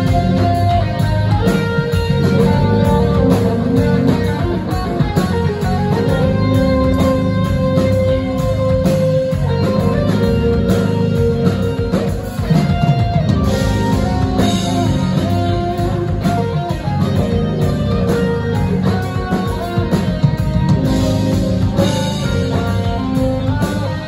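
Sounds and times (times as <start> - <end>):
drum kit: 0.0 - 24.0
electric guitar picking notes: 0.0 - 24.0
rock band playing: 0.0 - 24.0.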